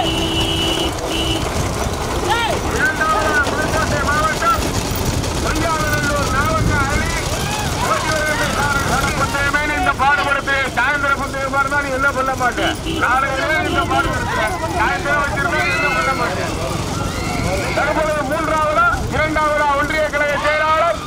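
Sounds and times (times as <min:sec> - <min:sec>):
men shouting: 0:02.2 - 0:04.4, 0:05.5 - 0:21.0.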